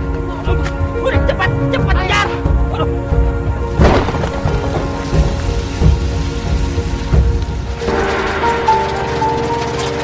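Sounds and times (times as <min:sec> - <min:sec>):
heavy rain falling: 0:03.6 - 0:10.0.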